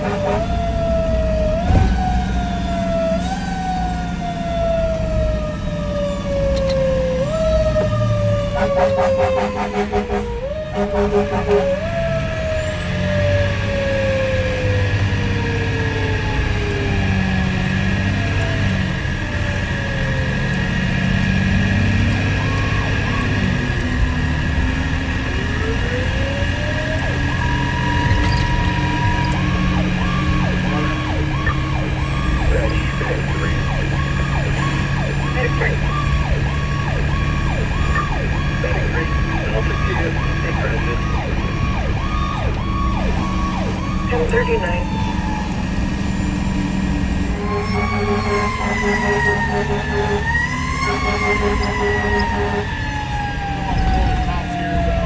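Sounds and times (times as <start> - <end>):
electronic siren wailing and yelping: 0.0 - 55.0
truck engine drone: 0.0 - 55.0.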